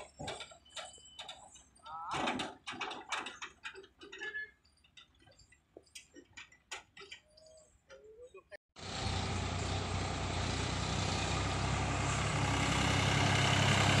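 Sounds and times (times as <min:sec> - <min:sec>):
tractor diesel engine running: 0:08.8 - 0:14.0.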